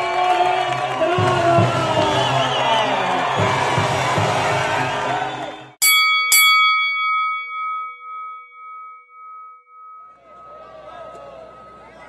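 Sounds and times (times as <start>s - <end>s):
boxing ring bell ringing: 5.8s - 12.0s
crowd noise: 10.1s - 12.0s.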